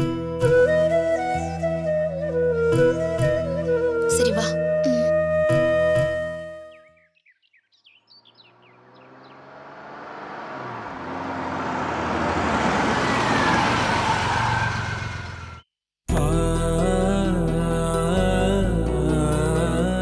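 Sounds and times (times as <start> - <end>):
background music: 0.0 - 7.0, 16.1 - 20.0
car engine and tyre noise: 7.9 - 15.7.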